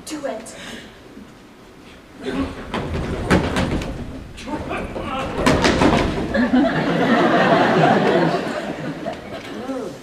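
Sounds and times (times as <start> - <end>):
sharp knocks and thumps: 2.3 - 6.7.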